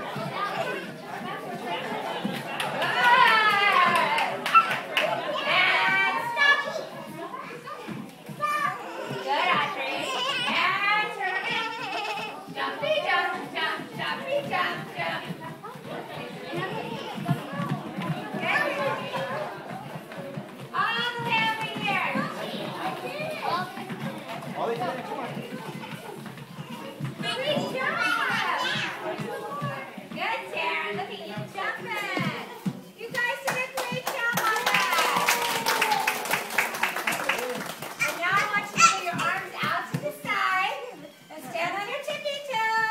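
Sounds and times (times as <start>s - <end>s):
young children chattering: 0.0s - 33.0s, 35.8s - 42.9s
hands clapping: 2.4s - 5.2s, 33.1s - 39.0s.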